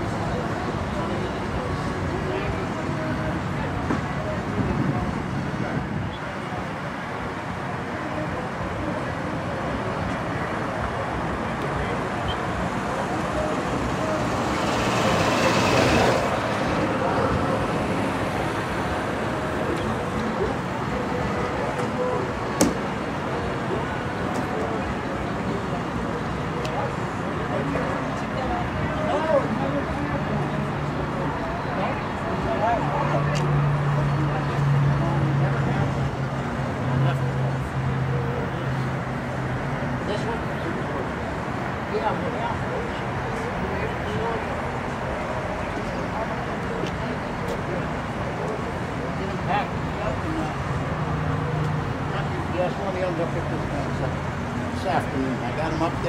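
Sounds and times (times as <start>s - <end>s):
distant voices: 0.0s - 56.0s
vehicle passing: 12.6s - 21.7s.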